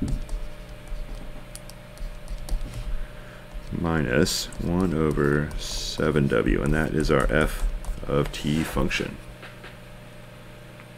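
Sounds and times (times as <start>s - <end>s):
low steady hum: 0.0s - 10.9s.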